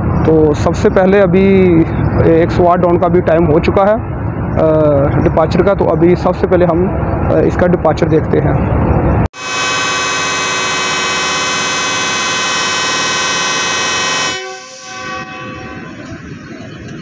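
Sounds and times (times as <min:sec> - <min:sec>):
locomotive air horn blast: 0:09.3 - 0:16.1.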